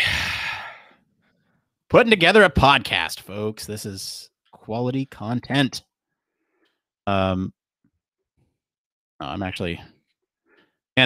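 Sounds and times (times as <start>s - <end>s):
man sighing: 0.0s - 1.0s.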